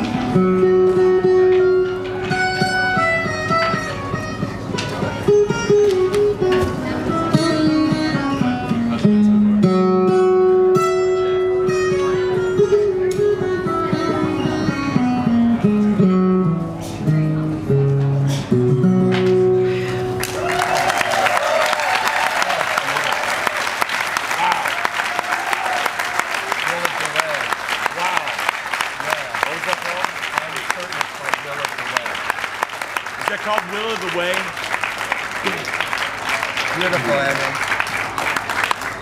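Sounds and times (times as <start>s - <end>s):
acoustic guitar picking: 0.0s - 20.3s.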